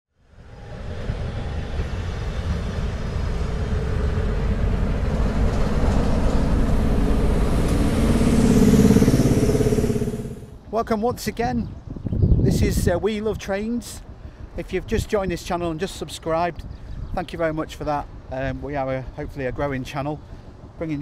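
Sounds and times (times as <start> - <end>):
diesel locomotive engine rumbling: 0.3 - 10.6.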